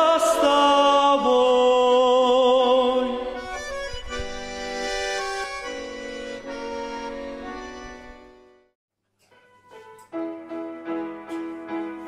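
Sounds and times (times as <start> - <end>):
piano accordion playing chords: 0.0 - 12.0.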